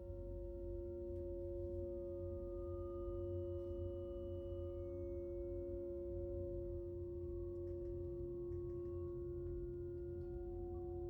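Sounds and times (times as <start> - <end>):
electronic sine-wave drone: 0.0 - 11.0.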